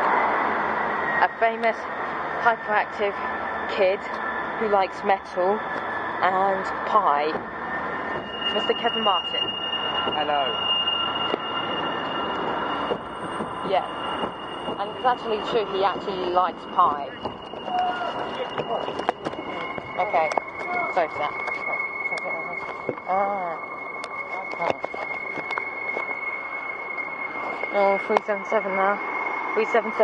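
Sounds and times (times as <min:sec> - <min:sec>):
high-pitched whine: 0:00.0 - 0:30.0
traffic noise: 0:00.0 - 0:30.0
train rumbling past: 0:00.0 - 0:30.0
footsteps on paving slabs: 0:17.2 - 0:21.8.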